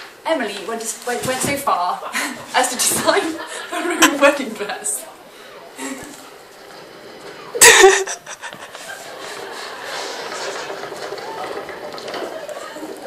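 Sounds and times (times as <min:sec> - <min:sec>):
background noise: 0:00.0 - 0:13.0
woman laughing: 0:07.6 - 0:09.4.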